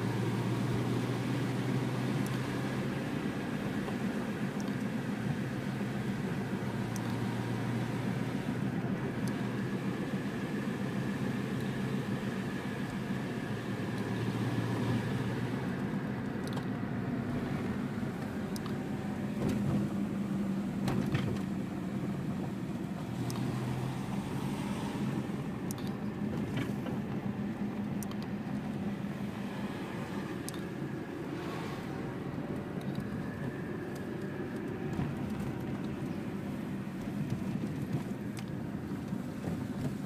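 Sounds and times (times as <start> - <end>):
car engine running: 0.0 - 40.0
tyre and road noise: 0.0 - 40.0.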